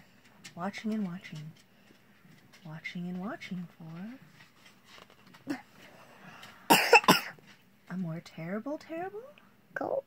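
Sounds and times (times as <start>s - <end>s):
woman coughing: 6.7s - 7.4s.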